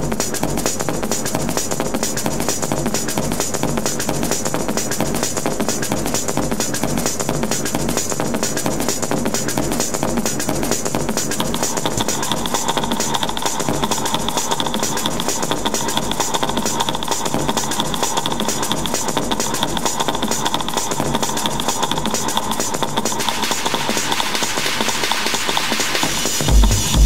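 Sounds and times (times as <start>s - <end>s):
techno electronic groove: 0.0s - 27.0s
deep bass pulses: 26.5s - 27.0s.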